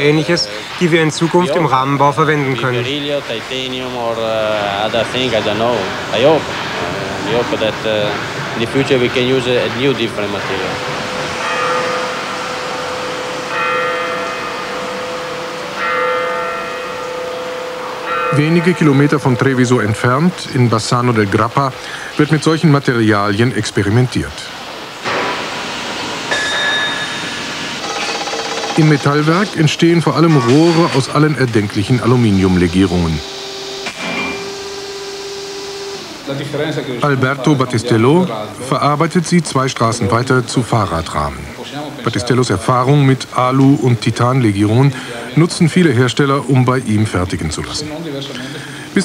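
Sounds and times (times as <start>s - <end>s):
machine humming: 0.0s - 40.9s
church bell tolling: 7.3s - 21.8s, 26.1s - 34.6s
held tone: 18.0s - 21.8s, 26.3s - 38.3s.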